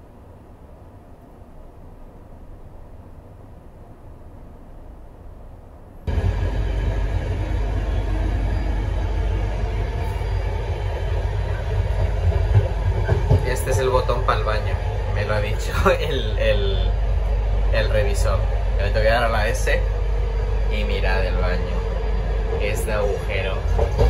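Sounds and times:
train rumble inside carriage: 0.0s - 24.0s.

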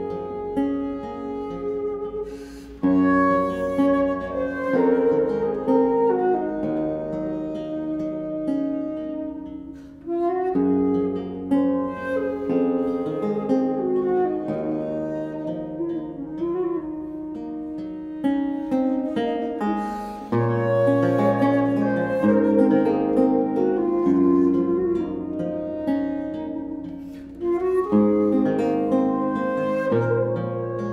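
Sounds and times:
plucked theorbo chords: 0.0s - 30.9s
wooden flute melody: 0.0s - 30.9s.

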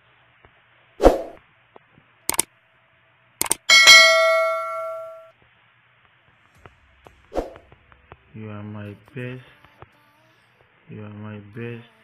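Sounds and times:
quick clicks: 3.4s - 3.7s
bright bell ding: 3.6s - 5.3s.

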